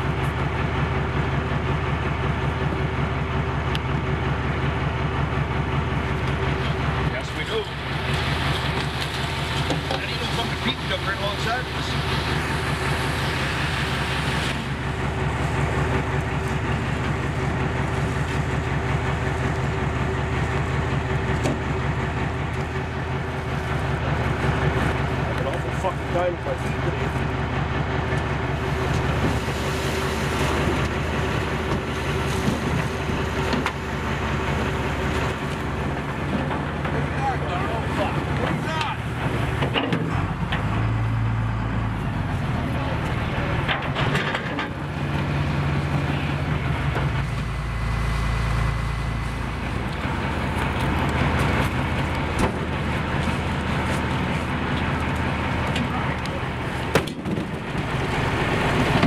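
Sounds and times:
boat engine running: 0:00.0 - 0:59.0.

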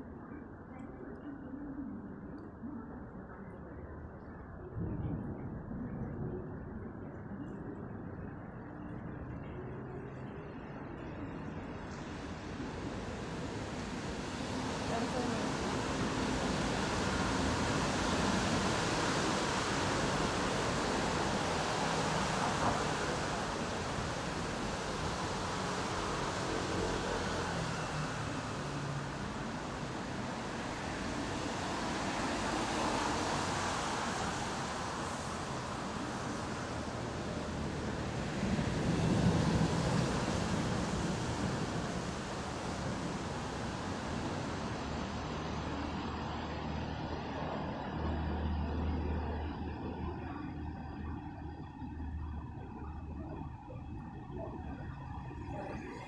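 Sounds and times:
train station ambient rushing noise: 0:00.0 - 0:56.0.

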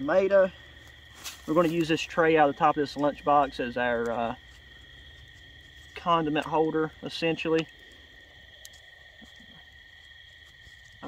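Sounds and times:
night insects chirring: 0:00.0 - 0:11.0.

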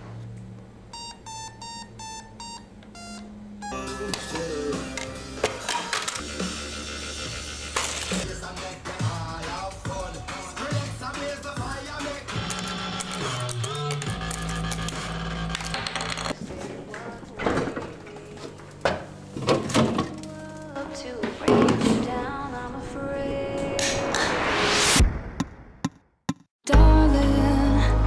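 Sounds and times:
low sustained bass: 0:26.8 - 0:28.0.

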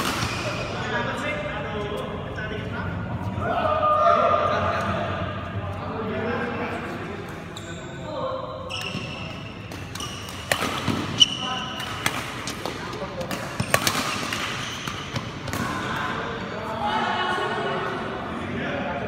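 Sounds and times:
sneakers squeaking on court: 0:08.7 - 0:12.5, 0:13.2 - 0:15.5
rackets striking shuttlecock: 0:09.7 - 0:15.8.

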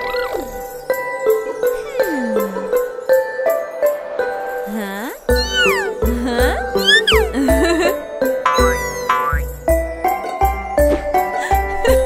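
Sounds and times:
light background music: 0:00.0 - 0:12.0
squeaky cartoon voice: 0:05.3 - 0:06.1, 0:06.8 - 0:07.4, 0:08.5 - 0:09.4.

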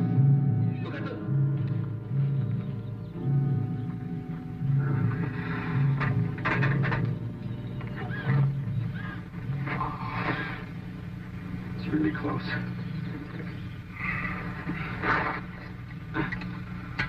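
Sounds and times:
film soundtrack music: 0:00.0 - 0:17.0
low pulsing note: 0:00.0 - 0:17.0
voices: 0:00.5 - 0:17.0.

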